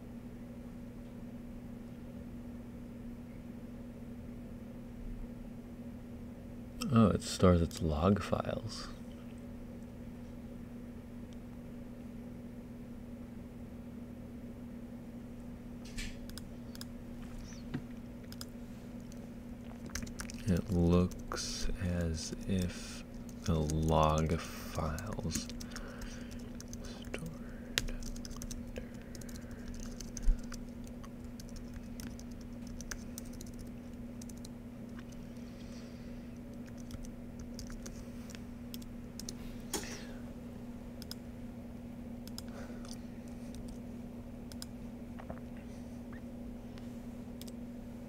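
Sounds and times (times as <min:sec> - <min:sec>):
steady low hum: 0:00.0 - 0:48.0
keyboard and mouse clicks: 0:16.0 - 0:19.2, 0:19.8 - 0:21.3, 0:24.8 - 0:35.2, 0:36.5 - 0:39.4, 0:41.0 - 0:41.2.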